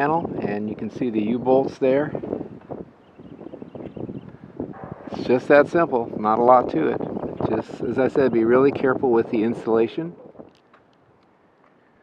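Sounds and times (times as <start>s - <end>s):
wind on microphone: 0.0s - 11.2s.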